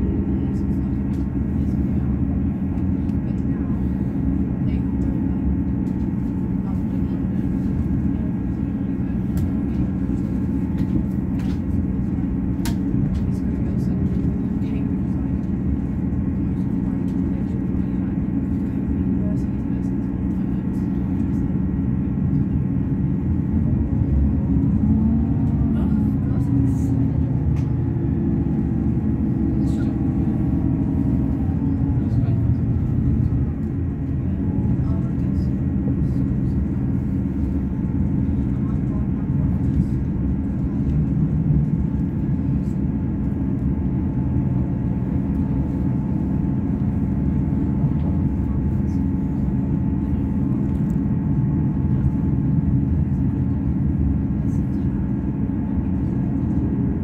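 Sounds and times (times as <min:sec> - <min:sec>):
diesel engine droning: 0:00.0 - 0:57.0
train wheels rumbling on rail: 0:00.0 - 0:57.0.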